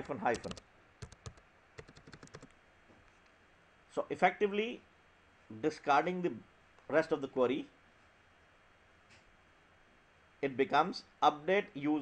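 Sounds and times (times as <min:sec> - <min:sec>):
keystrokes on a computer keyboard: 0:00.0 - 0:02.5.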